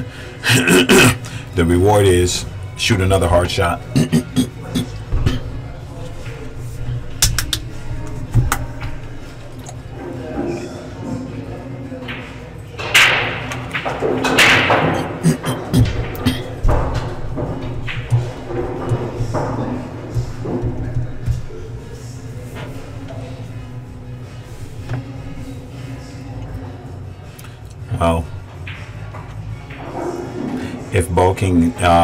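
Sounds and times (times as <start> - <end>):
music: 0.0 - 32.0
background chatter: 3.4 - 32.0.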